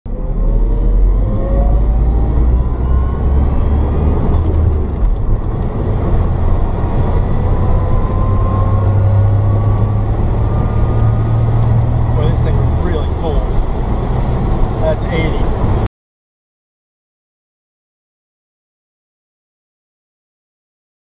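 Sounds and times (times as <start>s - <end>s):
electric drivetrain whine: 0.1s - 15.8s
road and wind rumble: 0.1s - 15.9s.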